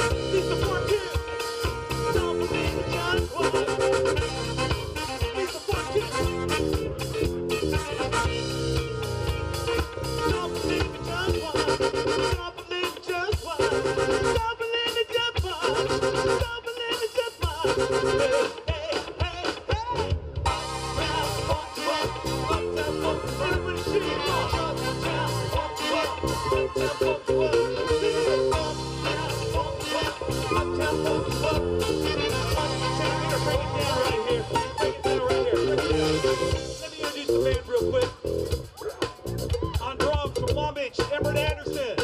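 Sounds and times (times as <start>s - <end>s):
live band playing: 0.0s - 42.0s.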